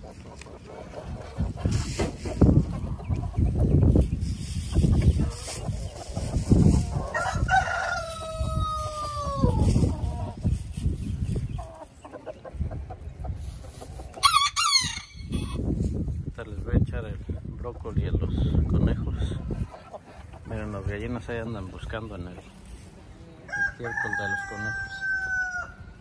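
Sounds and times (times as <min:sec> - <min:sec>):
hens clucking: 0:00.0 - 0:26.0
high chicken calls: 0:00.4 - 0:13.0, 0:13.8 - 0:15.8, 0:23.3 - 0:26.0
rooster crowing: 0:07.1 - 0:09.6, 0:23.5 - 0:26.0.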